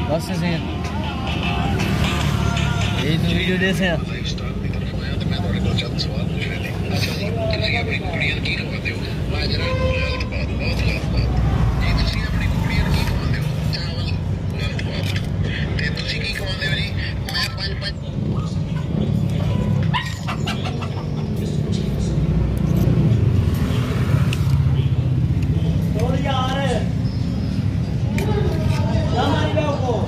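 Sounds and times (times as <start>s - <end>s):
voices talking: 0.0s - 30.0s.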